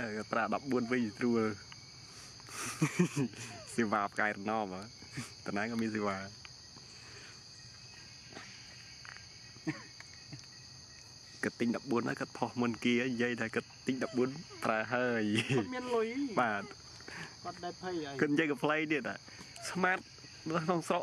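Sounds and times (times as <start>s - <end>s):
insects droning: 0.0s - 21.0s
person talking: 13.9s - 16.8s.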